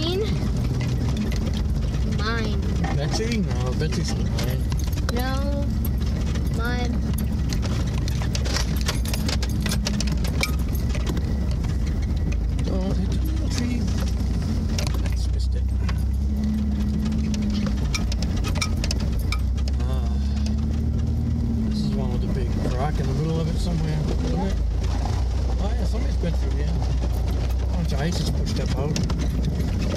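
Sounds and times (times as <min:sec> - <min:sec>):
car engine running at low speed: 0:00.0 - 0:29.9
rattles and clicks from vehicle body: 0:00.0 - 0:29.9.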